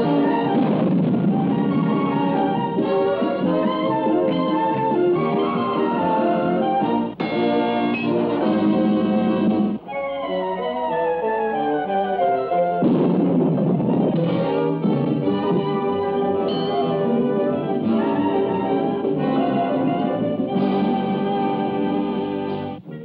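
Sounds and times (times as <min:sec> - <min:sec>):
cartoon background music: 0:00.0 - 0:23.0
falling notes: 0:00.0 - 0:23.0.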